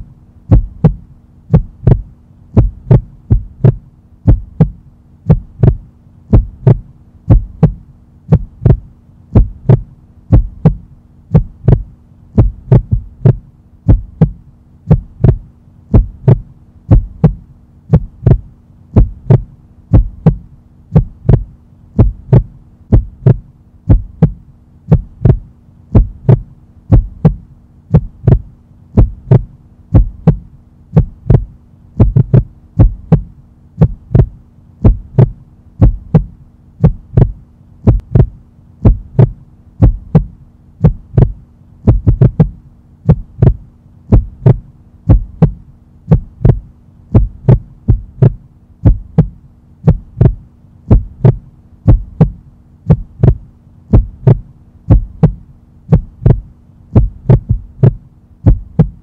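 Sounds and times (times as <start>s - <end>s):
faint steady hum: 0.0s - 59.0s
heartbeat: 0.0s - 59.0s.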